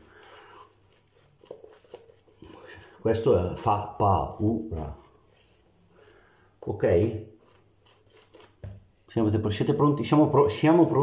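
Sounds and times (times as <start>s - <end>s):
shaving brush brushing on face: 0.0s - 9.3s.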